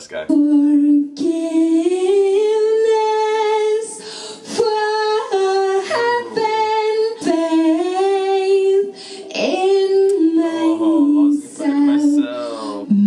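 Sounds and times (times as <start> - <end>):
woman singing unaccompanied: 0.3 - 13.0.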